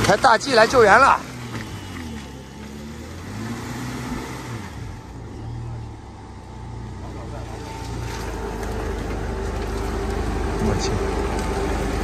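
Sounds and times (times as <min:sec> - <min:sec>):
truck engine revving unevenly: 0:00.0 - 0:12.0.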